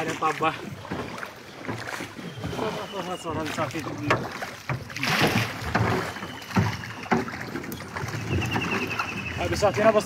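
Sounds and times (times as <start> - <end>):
oars knocking against boat: 0.0 - 10.0
water splashing: 0.0 - 10.0.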